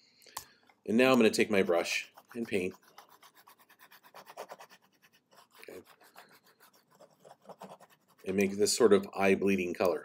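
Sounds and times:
mouse scratching on pad: 0:02.0 - 0:08.6.

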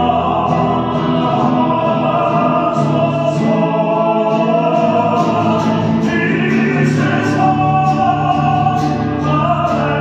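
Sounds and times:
voices singing operatically: 0:00.0 - 0:10.0.

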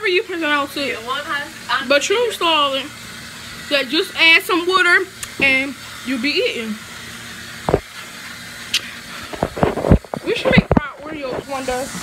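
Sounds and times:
voices: 0:00.0 - 0:03.0, 0:03.7 - 0:06.8, 0:10.2 - 0:11.9.

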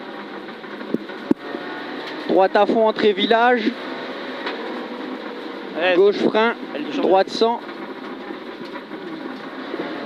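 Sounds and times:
car engine in cabin: 0:00.0 - 0:10.0
tyre and road noise: 0:00.0 - 0:10.0.

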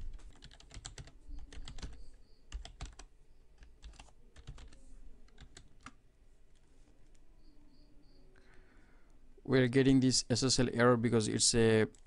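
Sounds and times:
keyboard typing clicks: 0:00.1 - 0:06.0.

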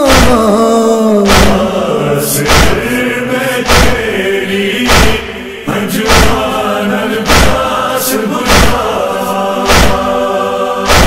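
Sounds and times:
male voices chanting: 0:00.0 - 0:11.0
chest-beating thuds: 0:01.2 - 0:05.4, 0:06.0 - 0:06.6, 0:07.2 - 0:07.8, 0:08.4 - 0:09.0, 0:09.6 - 0:10.2.

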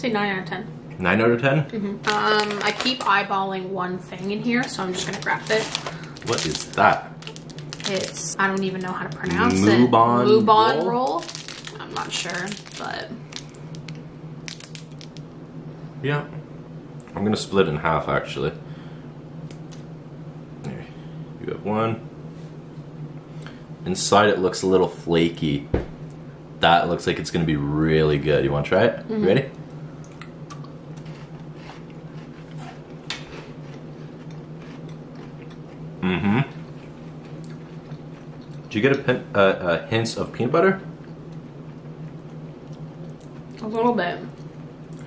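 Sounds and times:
steady low hum: 0:00.0 - 0:45.0
plastic wrapper crinkling: 0:02.0 - 0:03.1, 0:04.6 - 0:09.4, 0:10.8 - 0:15.2
people chewing crunchy wafer: 0:05.0 - 0:09.7, 0:11.0 - 0:13.9, 0:14.5 - 0:15.2, 0:30.1 - 0:38.7.

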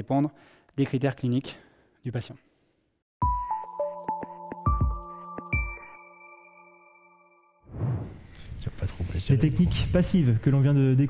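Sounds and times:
electronic jingle chime: 0:03.2 - 0:07.6.

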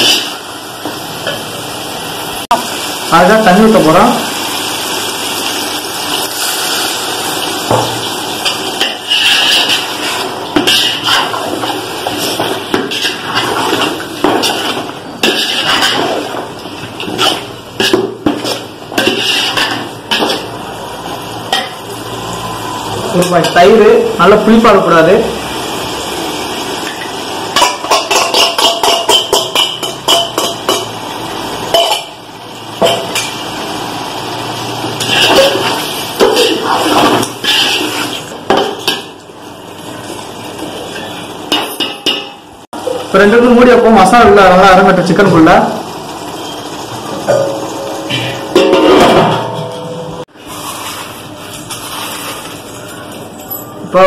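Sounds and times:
spoon stirring in pot: 0:08.4 - 0:20.5
spoon scraping and knocking pot: 0:12.0 - 0:16.2
metal utensils clinking: 0:35.0 - 0:39.1.

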